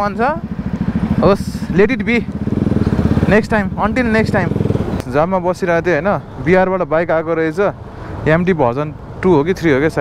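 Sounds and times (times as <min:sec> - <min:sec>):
motorcycle engine running: 0:00.0 - 0:05.9.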